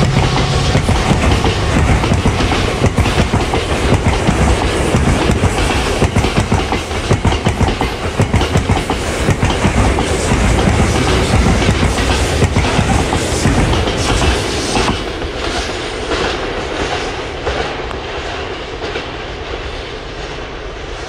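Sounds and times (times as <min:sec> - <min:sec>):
train wheels clattering over rail joints: 0:00.0 - 0:17.8
freight train rumble: 0:00.0 - 0:21.0.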